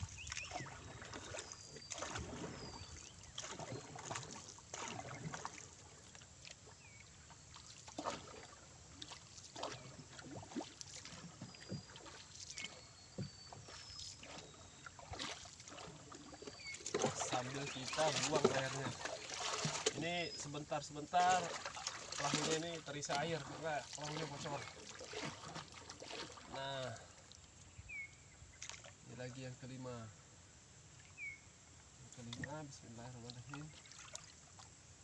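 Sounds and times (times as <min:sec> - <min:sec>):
paddle splashing in water: 0:00.0 - 0:29.1, 0:32.1 - 0:34.8
paddle knocking on boat: 0:10.6 - 0:12.2.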